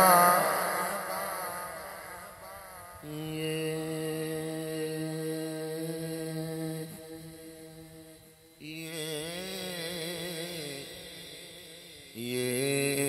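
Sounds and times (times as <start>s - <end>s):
man chanting melody: 0.0s - 13.0s.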